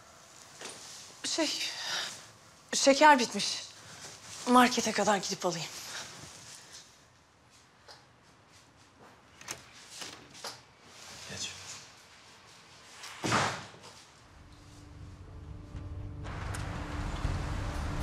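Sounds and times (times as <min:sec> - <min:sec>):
low hum: 0:14.3 - 0:18.0.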